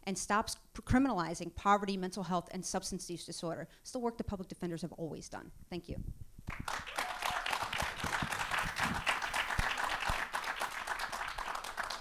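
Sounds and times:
audience applause: 6.5 - 12.0.

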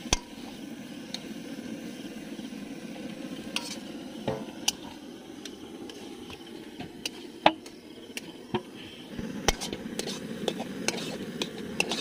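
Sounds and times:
metal spatula stirring in pan: 0.0 - 0.6, 3.5 - 5.0, 9.4 - 12.0
oil sizzling: 0.0 - 12.0.

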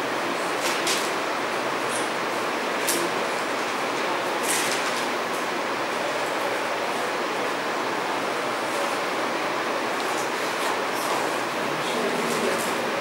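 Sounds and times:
room noise hiss: 0.0 - 13.0.

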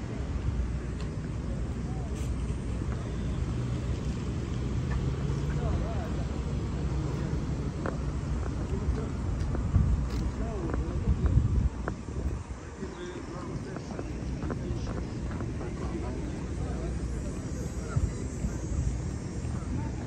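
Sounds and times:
cars rumbling: 0.0 - 20.0
engine hum: 0.0 - 20.0
faint voices of passers-by: 0.0 - 20.0.

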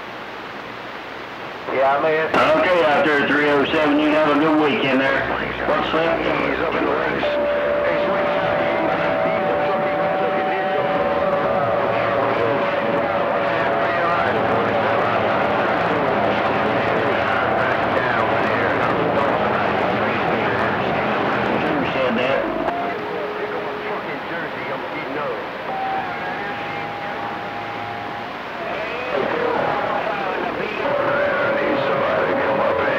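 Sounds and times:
faint garbled radio voices: 0.0 - 32.9
radio static: 1.5 - 32.9
steady whistle tones: 6.5 - 14.4, 22.4 - 29.5.

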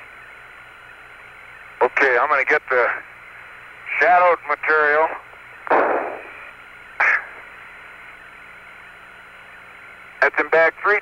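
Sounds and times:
radio hiss: 0.0 - 11.0
bursts of radio noise: 3.9 - 7.6.

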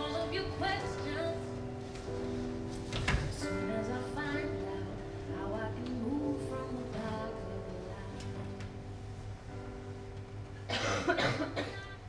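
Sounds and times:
quiet background music: 0.0 - 12.0
person coughing: 10.7 - 12.0.

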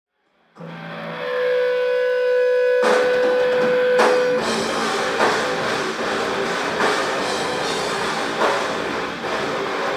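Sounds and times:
sustained electric guitar tone: 0.2 - 9.9
drums with cymbal wash: 2.7 - 9.9.

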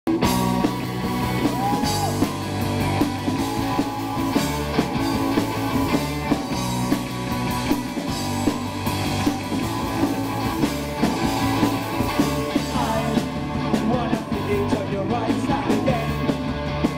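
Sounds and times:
punk rock band playing: 0.1 - 16.9.

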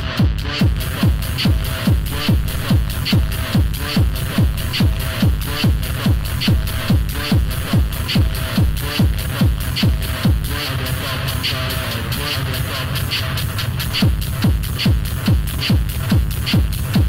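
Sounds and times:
techno kick drum: 0.0 - 17.0.

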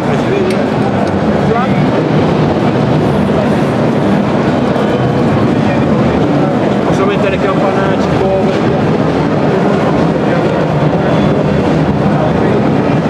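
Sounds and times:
crowded hall din: 0.0 - 13.0
murmur of voices: 0.0 - 13.0.

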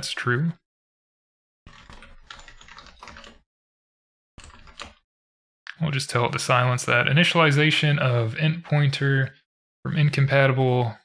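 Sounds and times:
typing on computer keyboard: 1.7 - 3.4, 4.4 - 5.0.

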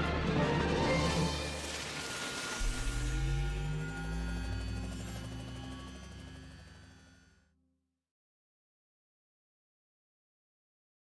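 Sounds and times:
deep low drone: 0.0 - 7.5
faint steady high tones: 2.1 - 7.4.

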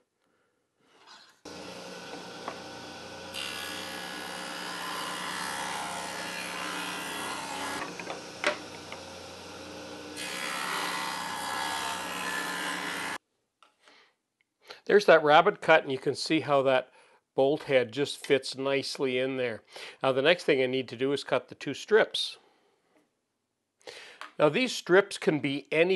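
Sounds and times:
table saw cutting wood: 1.5 - 13.2.

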